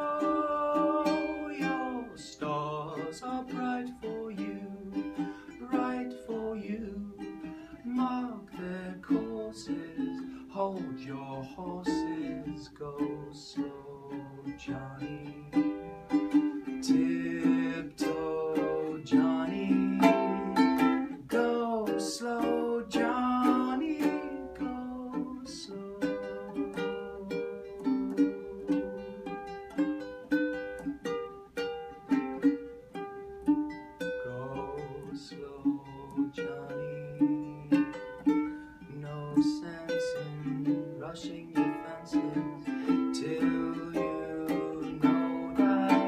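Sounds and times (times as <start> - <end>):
man singing: 0.0 - 29.6, 34.0 - 46.0
ukulele strummed and picked: 0.0 - 46.0.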